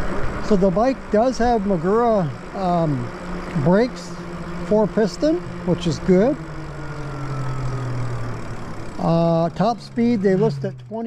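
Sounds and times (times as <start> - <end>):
electric bike motor hum and whine: 0.0 - 11.0.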